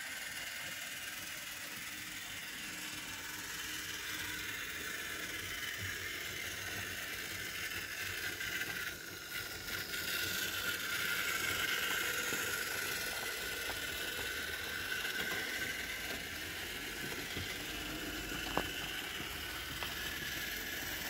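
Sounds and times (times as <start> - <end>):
model train rattling on track: 0.0 - 21.0.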